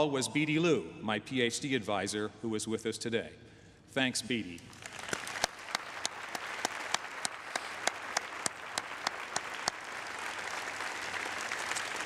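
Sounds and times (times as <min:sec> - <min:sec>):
audience applauding: 0:04.7 - 0:12.0
single person clapping sharply: 0:04.8 - 0:10.7.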